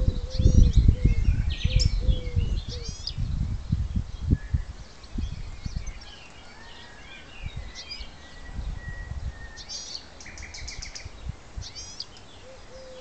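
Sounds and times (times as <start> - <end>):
nightingale singing: 0.0 - 13.0.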